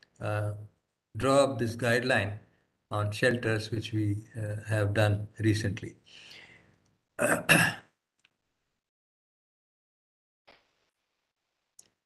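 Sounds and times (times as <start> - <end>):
man clearing his throat: 7.2 - 7.9.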